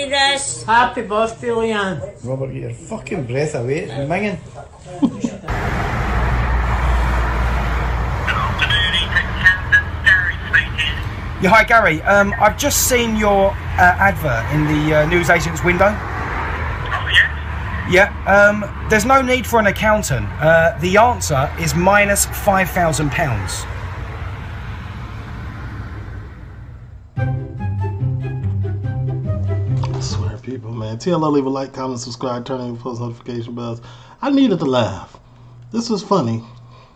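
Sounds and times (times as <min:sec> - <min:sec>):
road traffic rumble: 0:05.4 - 0:30.5.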